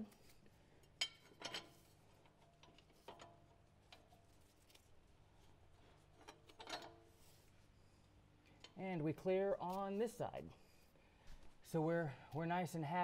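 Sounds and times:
metal plates clicking and clinking: 0.8 - 4.2, 6.2 - 7.0.

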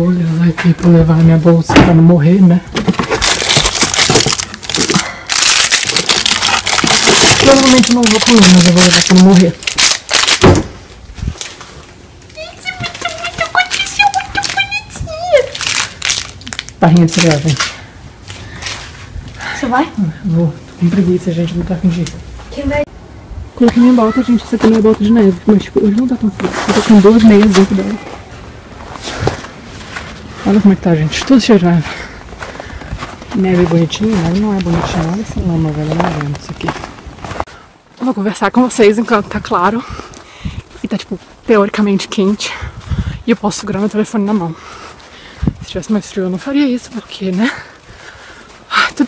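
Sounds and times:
low outdoor background noise: 0.0 - 49.0
cardboard and plastic packaging crinkling: 2.8 - 10.6, 12.6 - 17.7.

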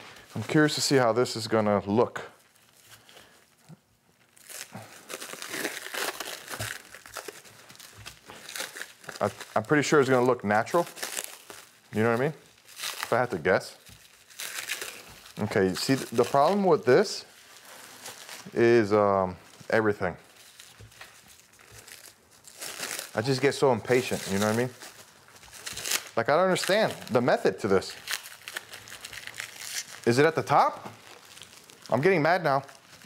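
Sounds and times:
plastic wrap crinkling: 0.0 - 33.0.

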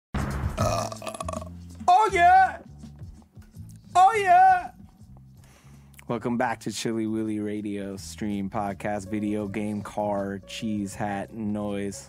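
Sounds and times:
person's rough throat sound: 0.6 - 1.6.

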